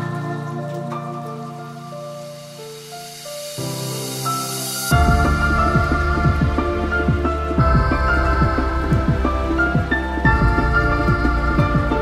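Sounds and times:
rising hiss: 0:00.0 - 0:12.0
sustained synth chords: 0:04.9 - 0:12.0.

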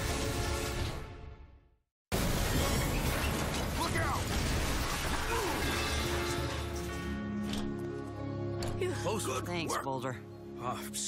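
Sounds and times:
dramatic score music: 0:00.0 - 0:01.6, 0:05.1 - 0:11.0.

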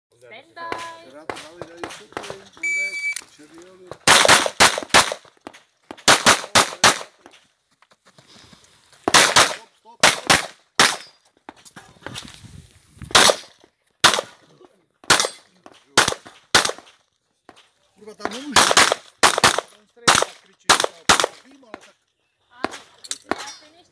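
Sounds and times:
shot timer beep: 0:02.6 - 0:03.2
pistol shots: 0:04.0 - 0:05.3, 0:05.9 - 0:07.2, 0:09.0 - 0:11.2, 0:13.1 - 0:14.4, 0:15.0 - 0:15.4, 0:16.0 - 0:16.9, 0:18.2 - 0:21.9.

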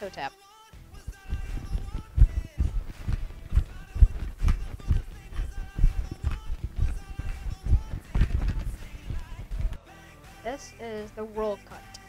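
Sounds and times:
faint background music: 0:00.0 - 0:12.0
feet thumping on carpet: 0:01.0 - 0:09.8.

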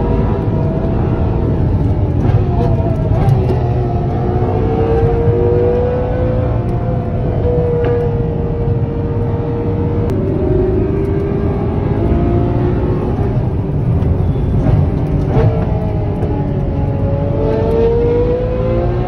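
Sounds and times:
car engine accelerating: 0:00.0 - 0:19.0
road and tyre rumble: 0:00.0 - 0:19.0.

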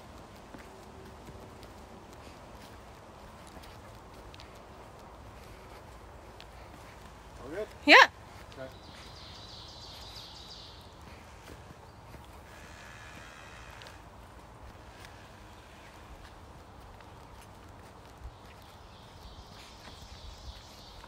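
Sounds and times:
footsteps on forest trail: 0:00.0 - 0:21.0.

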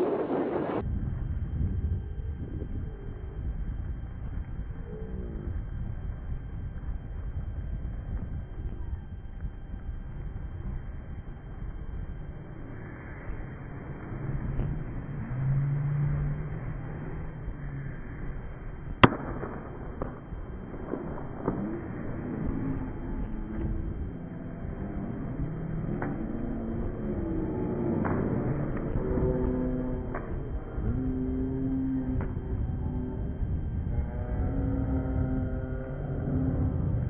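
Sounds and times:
stadium crowd noise: 0:00.0 - 0:00.8, 0:11.6 - 0:37.0
low rumble: 0:00.0 - 0:37.0
sharp crack: 0:19.0 - 0:22.1.

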